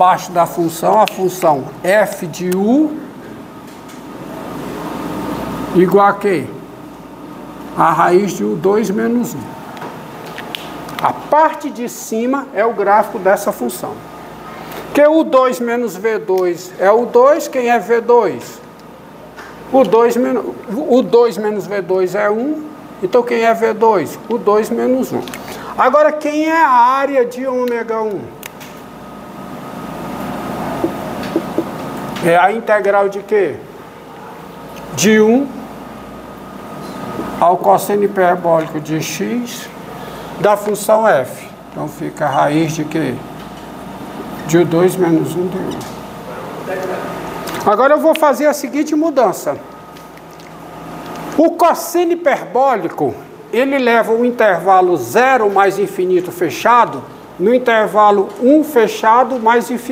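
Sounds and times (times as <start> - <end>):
rushing room noise: 29.0 - 49.8
marker writing on whiteboard: 30.8 - 31.8.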